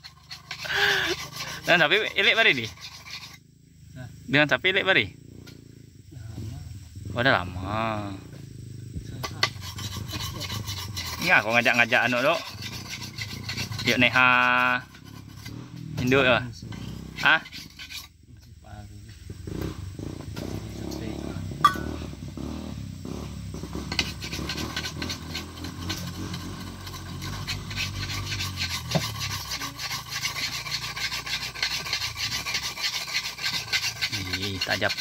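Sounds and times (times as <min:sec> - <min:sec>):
sharpening stone scraping steel blade: 0:00.0 - 0:03.4, 0:09.2 - 0:18.2, 0:21.6 - 0:22.0, 0:23.8 - 0:35.0.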